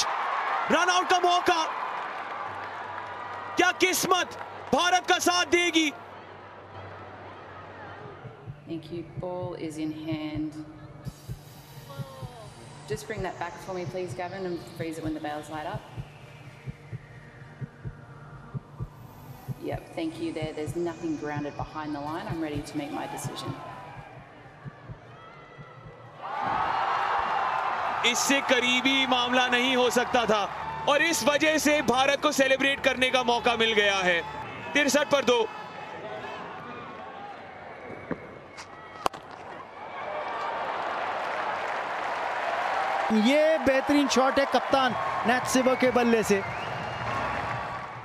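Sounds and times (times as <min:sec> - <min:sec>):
stadium crowd hubbub: 0:00.0 - 0:08.7, 0:22.4 - 0:48.0
steady low hum: 0:07.6 - 0:26.6
heartbeat thumps: 0:08.0 - 0:27.4.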